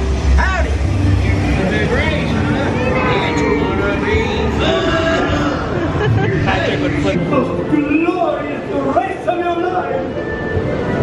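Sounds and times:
ride car rumbling: 0.0s - 11.0s
voices: 0.4s - 10.1s.

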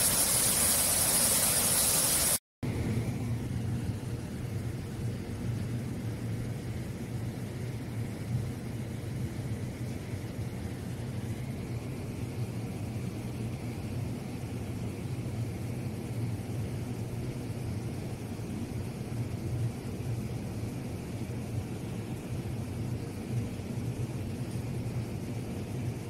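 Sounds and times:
faint hiss: 0.0s - 6.2s.

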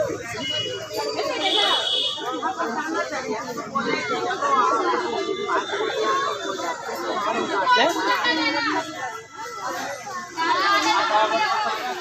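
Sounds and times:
women and children chattering: 0.0s - 12.0s.

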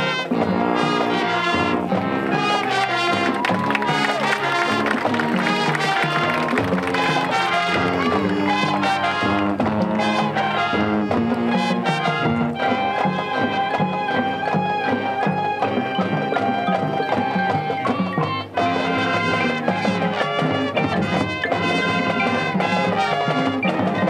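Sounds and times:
brass playing marching tune: 0.0s - 24.0s
marching drums: 0.0s - 24.0s.

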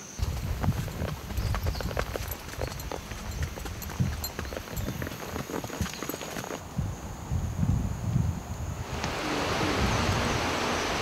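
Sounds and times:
hooves clopping on dirt trail: 0.0s - 7.1s.

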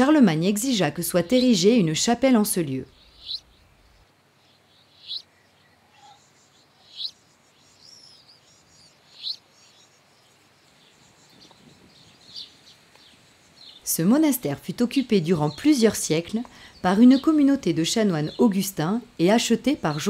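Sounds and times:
birds chirping: 0.0s - 20.0s
faint background hiss: 0.0s - 20.0s.

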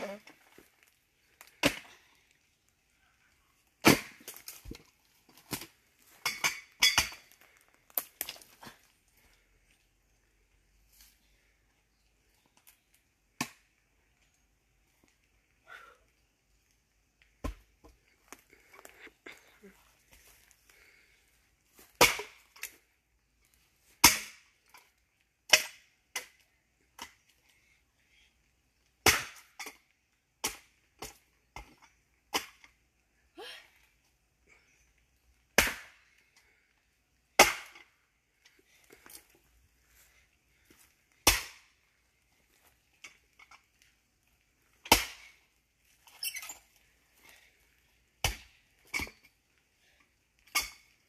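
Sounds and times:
axe splitting a log: 1.5s - 1.9s, 3.8s - 4.8s, 17.4s - 17.7s, 21.9s - 22.7s, 24.0s - 24.5s, 25.5s - 26.4s, 29.0s - 29.8s, 30.4s - 32.7s, 35.5s - 36.0s, 37.4s - 37.9s, 41.2s - 41.7s, 44.8s - 45.4s, 48.2s - 49.2s
wood splitting crackle: 3.6s - 9.3s, 35.5s - 36.6s, 37.3s - 39.5s, 40.1s - 51.0s.

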